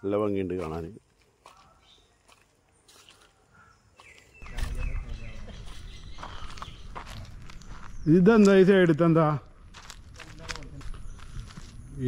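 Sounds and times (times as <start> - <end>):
footsteps: 0.5 - 3.4, 4.0 - 8.6, 9.4 - 11.8.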